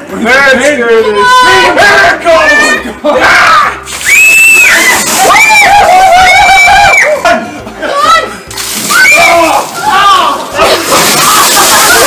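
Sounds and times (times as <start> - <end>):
ice water splashing down: 3.8 - 6.5, 8.5 - 12.0.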